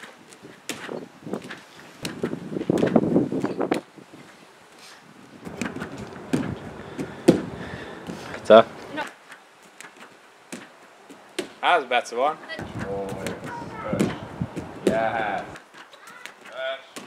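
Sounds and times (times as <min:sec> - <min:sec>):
thumps and slaps on air track: 0:05.5 - 0:08.2, 0:12.6 - 0:15.6.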